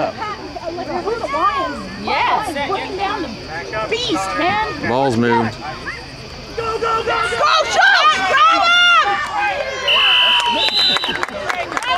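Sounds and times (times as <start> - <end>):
spectators shouting and cheering: 0.0 - 11.9
higher whistle: 9.8 - 11.2
referee whistle blast: 9.8 - 11.2.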